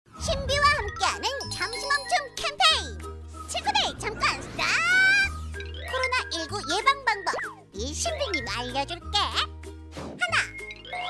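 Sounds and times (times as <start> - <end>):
cartoon jingle with chimes and bass: 0.2 - 2.6, 3.7 - 8.7
squeaky cartoon character voice: 3.5 - 9.5, 10.2 - 11.0.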